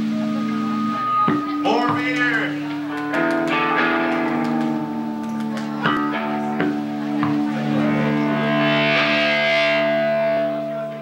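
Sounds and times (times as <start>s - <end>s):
bass sustained notes: 0.0s - 11.0s
electric guitar sustained notes: 0.0s - 11.0s
drum hits: 1.3s - 4.9s.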